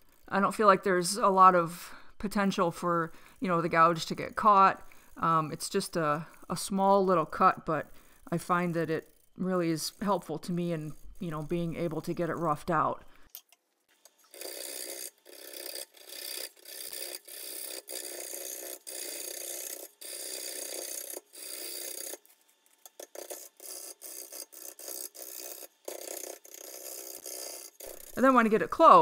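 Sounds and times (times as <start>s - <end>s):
lathe gouge rasping cuts in wood: 14.4s - 22.2s, 22.9s - 28.6s.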